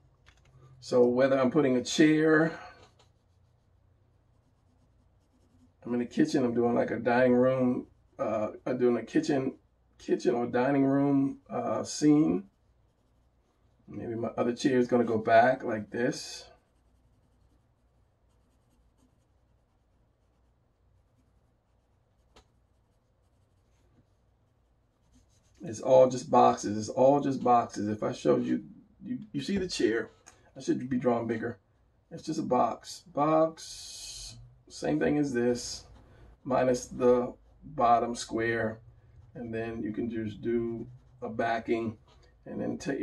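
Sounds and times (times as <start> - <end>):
low steady hum: 0.0 - 43.0
pencil drawing on paper: 3.0 - 8.2, 11.8 - 26.2.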